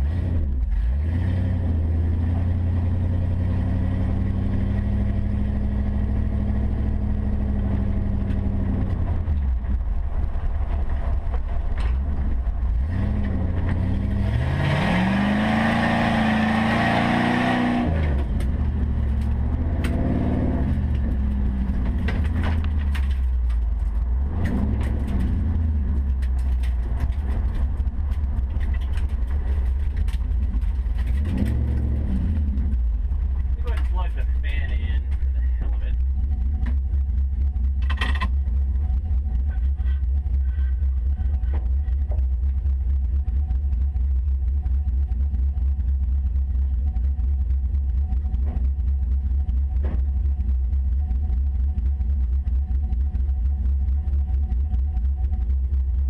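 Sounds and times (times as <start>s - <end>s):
car engine accelerating: 0.0s - 56.0s.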